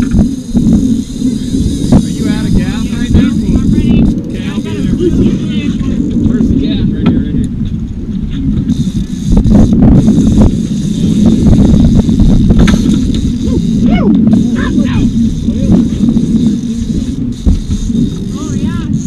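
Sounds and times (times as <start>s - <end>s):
outboard motor rumble: 0.0s - 19.0s
wind on microphone: 0.0s - 19.0s
indistinct voices: 1.2s - 7.3s, 13.2s - 17.3s.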